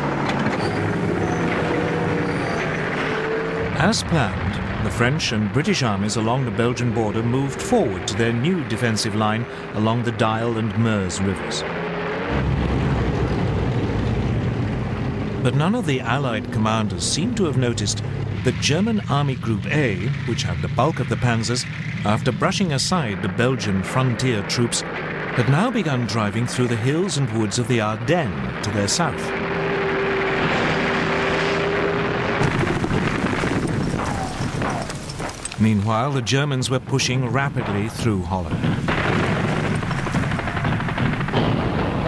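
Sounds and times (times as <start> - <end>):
tank engine running: 0.0 - 42.0.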